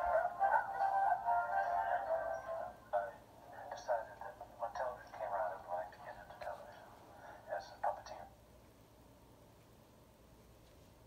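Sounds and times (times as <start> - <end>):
speech from small speaker: 2.9 - 8.4.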